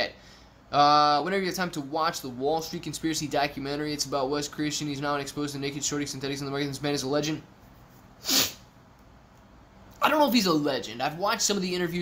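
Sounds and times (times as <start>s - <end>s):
man sneezing: 8.2s - 8.7s.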